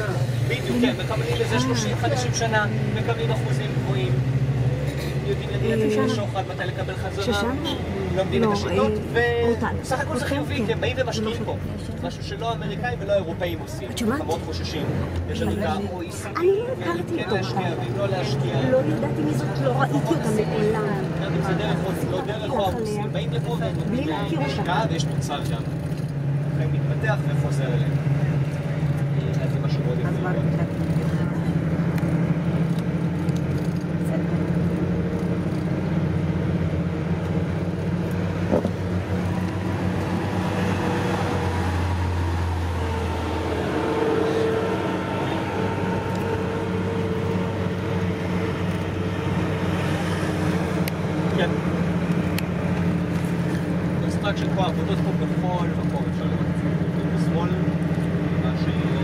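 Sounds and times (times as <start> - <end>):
vehicle engine and road drone: 0.0 - 59.0.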